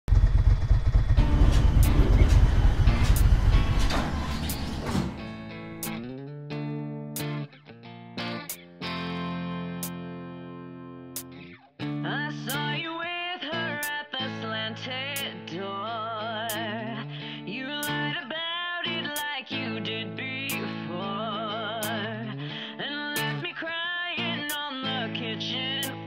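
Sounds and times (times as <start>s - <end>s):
motorcycle engine rumbling: 0.0s - 5.2s
rock song with guitar chords: 5.1s - 12.8s, 13.4s - 23.6s, 24.2s - 26.0s.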